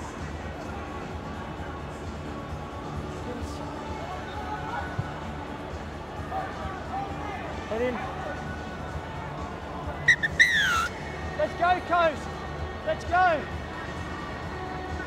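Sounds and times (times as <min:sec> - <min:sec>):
stadium crowd murmur: 0:00.0 - 0:15.0
players shouting: 0:10.0 - 0:11.0
referee whistle: 0:10.1 - 0:10.9.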